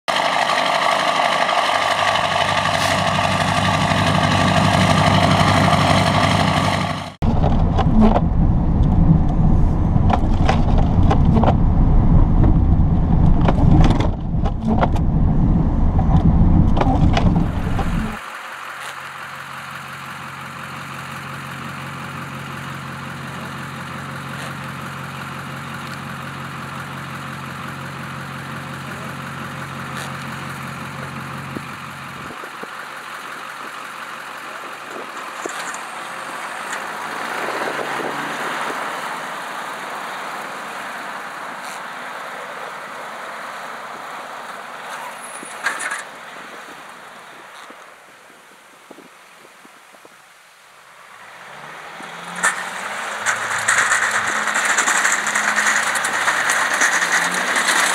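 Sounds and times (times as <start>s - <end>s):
distant truck: 0.1s - 48.1s, 50.8s - 57.9s
diesel truck engine rumble: 0.1s - 50.0s, 50.7s - 57.9s.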